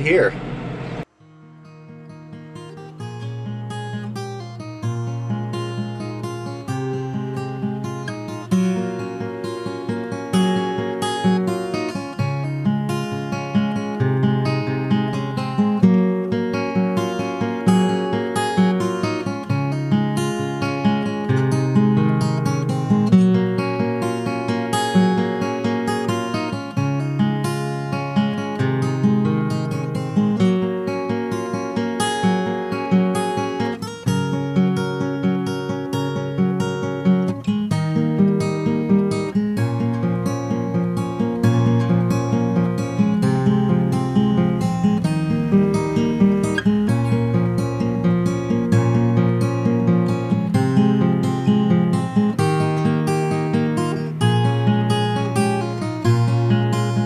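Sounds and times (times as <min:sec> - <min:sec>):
strummed acoustic guitar: 0:00.0 - 0:57.0.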